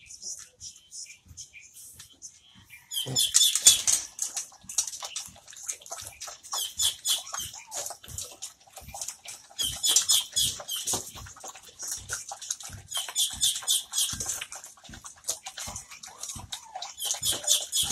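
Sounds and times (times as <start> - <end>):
dogs chewing and crunching: 0.0 - 17.9
clicks against metal bowls: 3.0 - 17.9.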